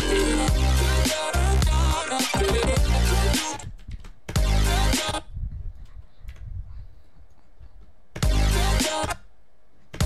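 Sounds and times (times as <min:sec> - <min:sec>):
electronic music with heavy bass: 0:00.0 - 0:05.3, 0:08.2 - 0:09.2.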